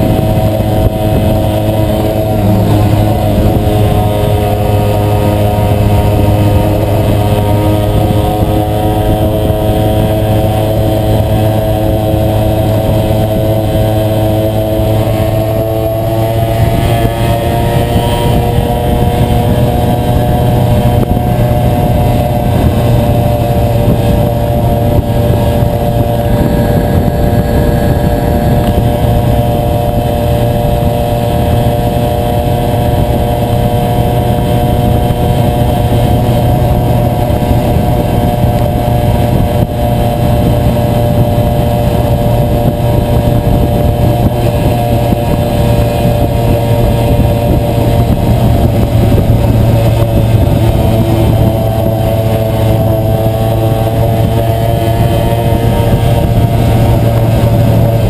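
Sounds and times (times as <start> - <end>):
two-stroke moped engine cruising: 0.0 - 58.0
wind rush on microphone: 0.0 - 58.0.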